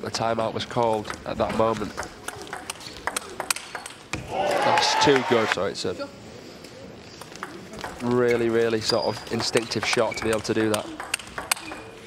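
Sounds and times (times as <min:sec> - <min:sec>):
table tennis ball clicks: 0:01.8 - 0:04.1, 0:09.2 - 0:12.0.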